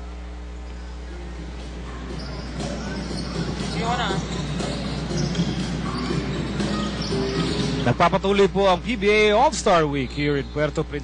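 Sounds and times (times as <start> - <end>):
music playing: 0.8 - 9.9
crowd noise: 0.9 - 10.7.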